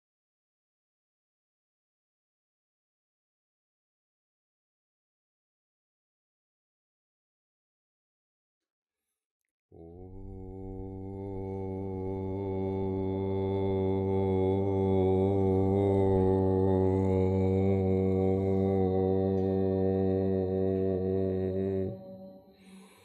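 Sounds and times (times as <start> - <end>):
man chanting long note: 9.8 - 22.9.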